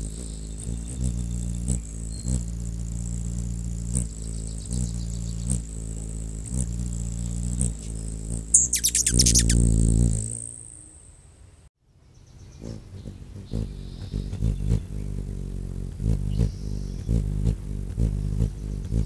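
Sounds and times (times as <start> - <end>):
rapid high bird chirps: 0.0 - 11.5, 16.2 - 19.0.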